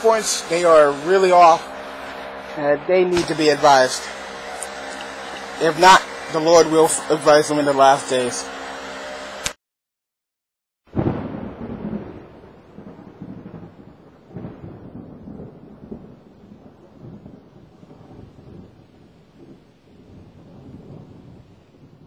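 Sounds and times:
thunder rumbling: 0.0 - 7.6, 10.9 - 22.0.

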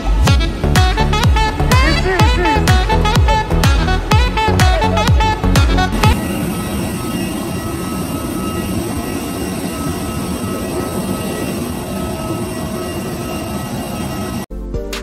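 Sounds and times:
thin whining tones: 4.4 - 14.5
jet aircraft rumble and hiss: 4.9 - 14.5.

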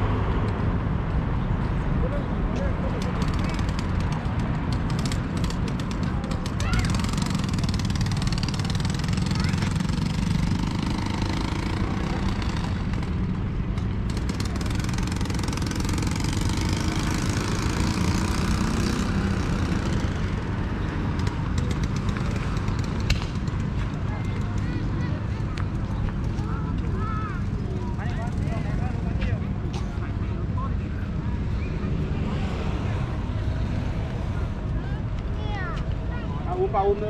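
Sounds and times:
road traffic rumble: 0.0 - 37.0.

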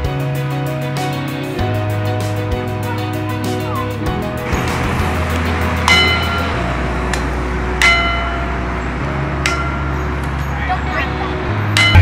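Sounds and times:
background music with bass: 0.0 - 12.0.

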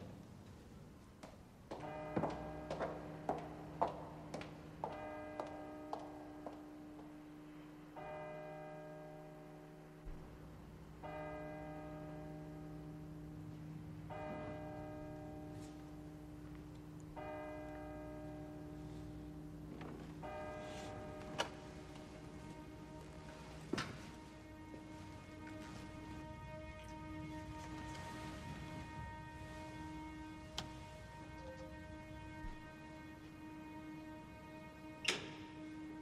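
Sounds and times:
hard-soled footsteps: 0.0 - 7.2, 18.8 - 33.4
soft sustained musical chord: 1.8 - 36.0.

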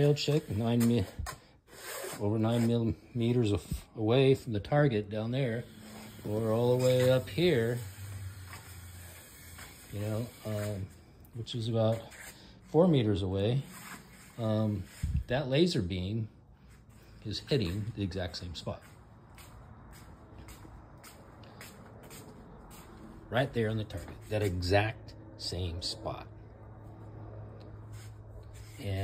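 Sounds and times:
shuffling footsteps: 0.1 - 3.9, 9.6 - 15.4, 16.6 - 24.8, 27.8 - 29.0
steady low hum: 2.6 - 29.0.

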